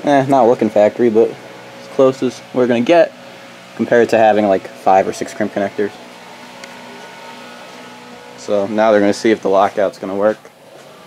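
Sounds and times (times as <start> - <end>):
faint constant tones: 0.0 - 11.0
machinery hum: 0.0 - 11.0.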